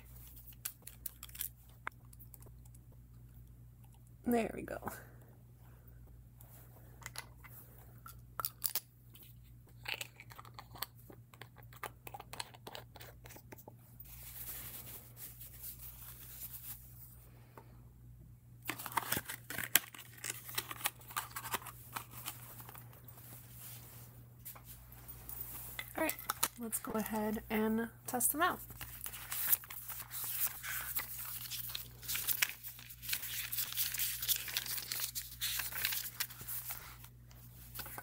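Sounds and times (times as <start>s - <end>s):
paper towel rustling: 14.0s - 17.2s.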